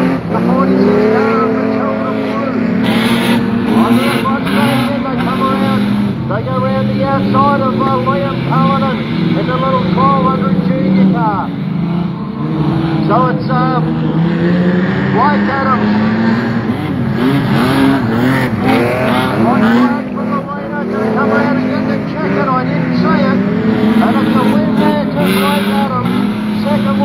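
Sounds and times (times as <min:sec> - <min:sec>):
race car engines droning: 0:00.0 - 0:27.0.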